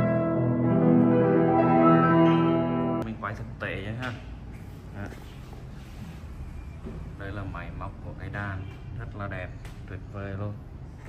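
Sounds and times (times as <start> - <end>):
piano chords: 0.0 - 3.0.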